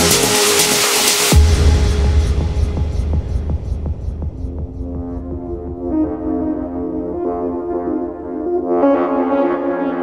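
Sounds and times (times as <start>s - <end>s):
deep throbbing bass drone: 0.0s - 8.4s.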